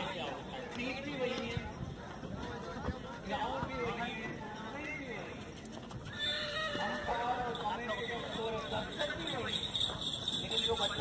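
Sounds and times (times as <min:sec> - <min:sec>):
crowd voices: 0:00.0 - 0:06.0, 0:06.8 - 0:11.0
horse whinnying: 0:06.0 - 0:07.4.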